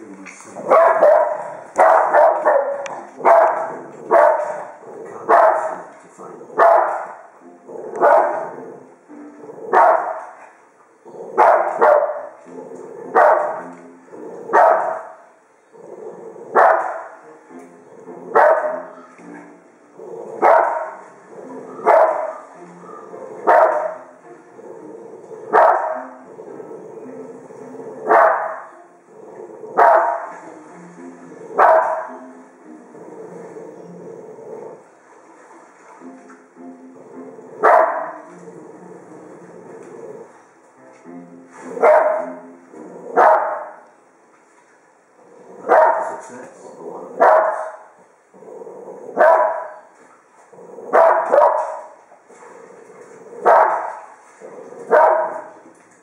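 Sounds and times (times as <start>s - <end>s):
dog barking: 0.6s - 5.9s, 6.6s - 7.2s, 7.9s - 8.6s, 9.7s - 10.4s, 11.4s - 12.4s, 13.1s - 13.6s, 14.5s - 15.2s, 16.6s - 17.2s, 18.4s - 19.1s, 20.4s - 21.0s, 21.8s - 24.0s, 25.5s - 26.1s, 28.1s - 28.8s, 29.8s - 30.3s, 31.6s - 32.2s, 37.6s - 38.2s, 41.8s - 42.4s, 43.2s - 43.8s, 45.6s - 46.2s, 47.2s - 47.9s, 49.2s - 49.8s, 50.9s - 52.0s, 53.4s - 54.1s, 54.9s - 55.6s.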